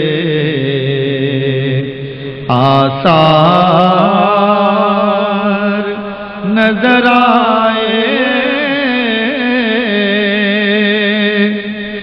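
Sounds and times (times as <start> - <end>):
man singing melismatic line: 2.5 - 12.0.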